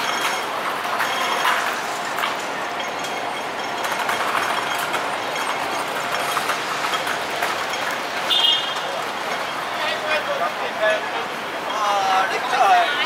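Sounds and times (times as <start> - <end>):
busy street noise: 0.0 - 13.0
crossing signal ticking: 0.0 - 13.0.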